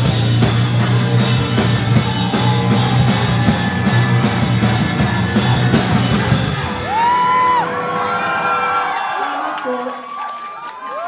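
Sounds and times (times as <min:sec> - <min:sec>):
live rock band playing: 0:00.0 - 0:09.4
crowd member whooping: 0:01.8 - 0:11.0.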